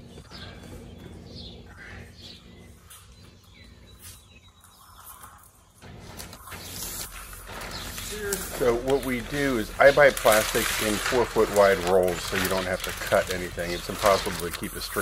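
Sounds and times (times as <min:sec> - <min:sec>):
birds chirping: 0:00.0 - 0:15.0
plastic sheet crinkling: 0:05.8 - 0:15.0.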